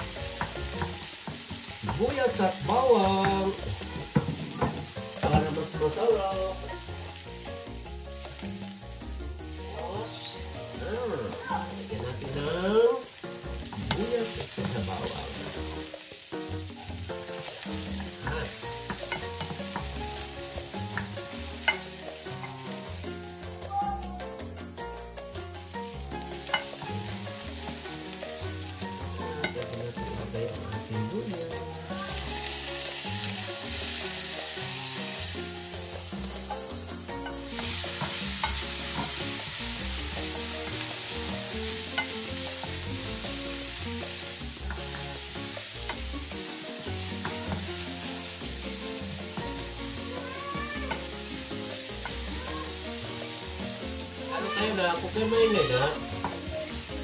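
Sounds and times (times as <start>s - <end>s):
onion and garlic sizzling in oil: 0.0s - 57.0s
wooden spoon scraping a pan: 16.9s - 23.0s, 33.8s - 46.1s.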